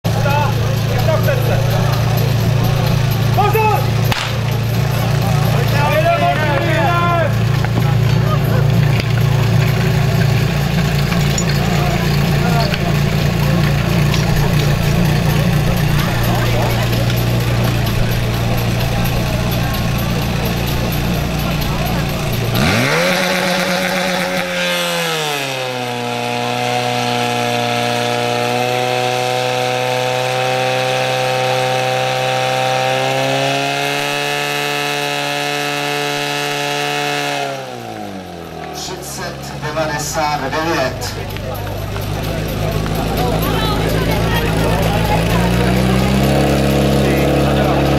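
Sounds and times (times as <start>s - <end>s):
fire pump engine running: 0.0s - 47.9s.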